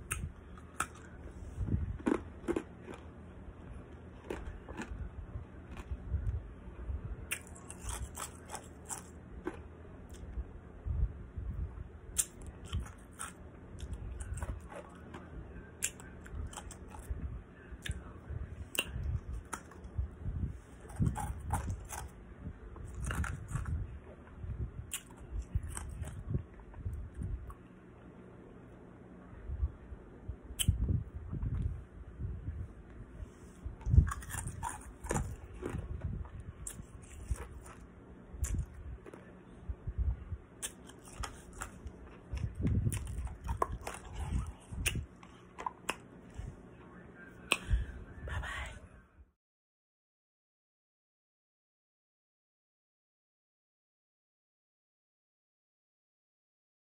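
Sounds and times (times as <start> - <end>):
ice crunching between teeth: 2.0 - 3.1, 4.2 - 5.0, 7.3 - 10.2, 12.2 - 17.1, 20.8 - 22.1, 22.8 - 23.8, 33.8 - 35.8, 40.6 - 46.0.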